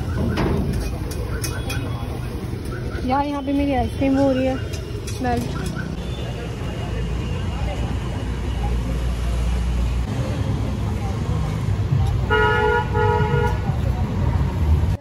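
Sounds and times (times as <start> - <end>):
road traffic rumble: 0.0 - 15.0
vehicle horn honking: 12.3 - 13.6.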